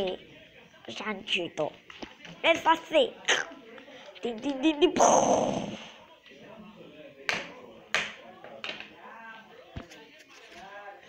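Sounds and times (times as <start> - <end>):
faint talk: 0.0 - 11.0.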